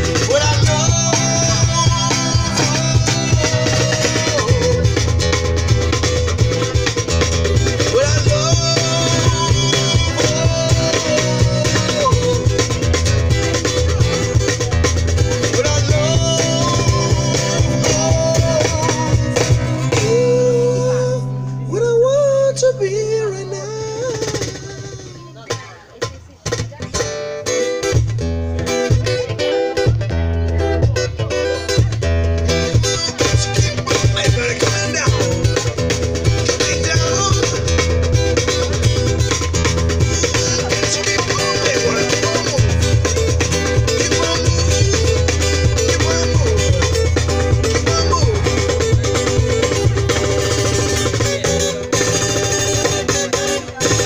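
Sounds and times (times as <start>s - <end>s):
person singing: 0.0s - 5.4s, 7.4s - 25.4s, 31.6s - 54.0s
acoustic guitar: 0.0s - 54.0s.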